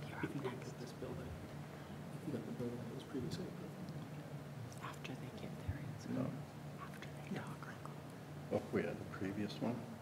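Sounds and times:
murmured whispered conversation: 0.0 - 9.8.

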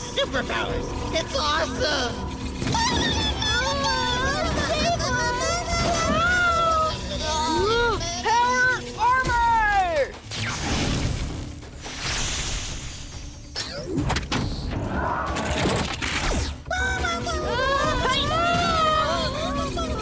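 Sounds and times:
background music: 0.0 - 20.0
cartoon voice singing: 2.7 - 9.0, 16.7 - 20.0.

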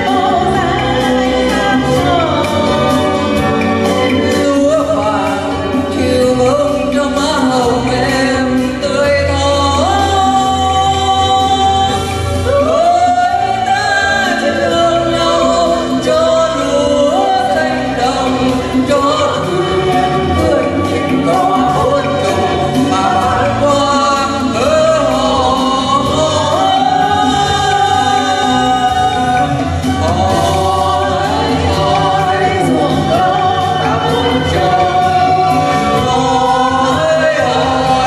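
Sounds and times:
man and woman singing: 0.0 - 38.0
recorded backing track: 0.0 - 38.0.

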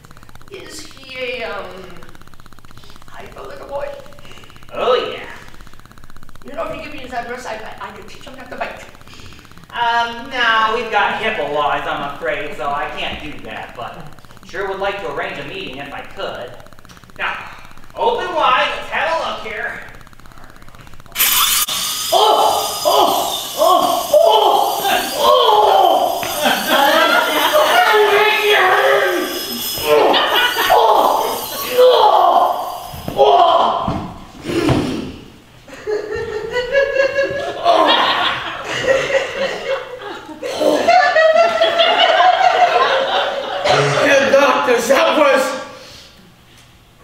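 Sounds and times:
dental drill whirring: 0.0 - 13.4, 14.1 - 34.4
audience laughter: 35.7 - 44.1.

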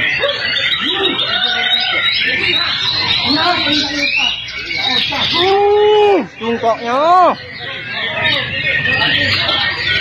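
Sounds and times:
people's voices: 0.0 - 10.0
songbirds chirping and whistling: 0.0 - 10.0.

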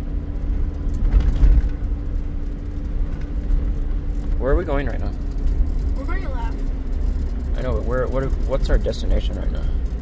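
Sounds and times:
car engine humming: 0.0 - 10.0
rumble from rough road: 0.0 - 10.0.

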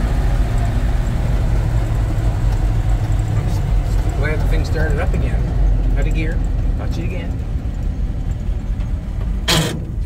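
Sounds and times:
truck engine rumbling: 0.0 - 10.0
short harsh gearbox noise: 9.5 - 10.0.

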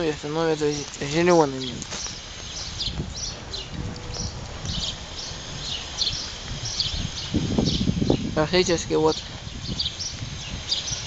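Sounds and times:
low outdoor rumble: 0.0 - 11.0
small birds chirping: 0.0 - 11.0.

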